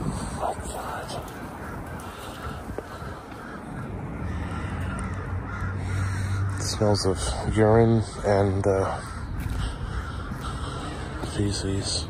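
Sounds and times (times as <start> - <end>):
outdoor background noise: 0.0 - 12.0
bird calling: 0.3 - 12.0.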